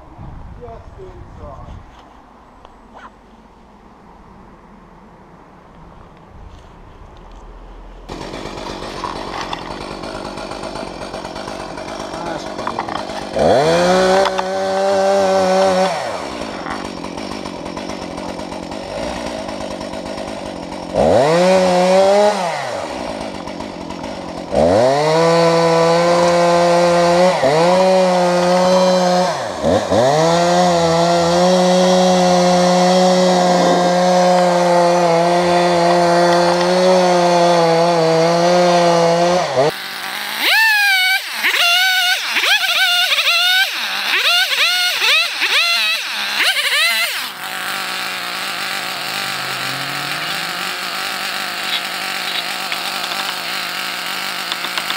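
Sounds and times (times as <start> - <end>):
chainsaw cutting wood: 8.1 - 54.9.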